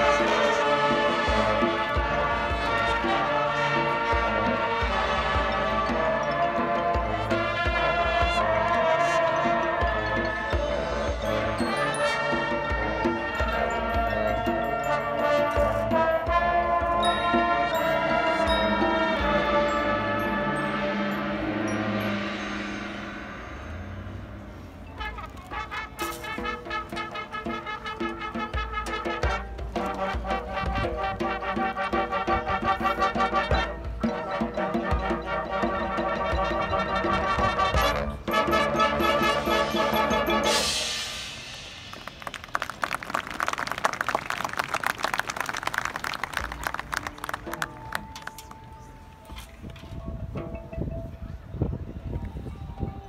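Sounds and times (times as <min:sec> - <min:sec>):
marching band sustained chord: 0:00.0 - 0:48.9
crowd applauding: 0:41.9 - 0:48.7.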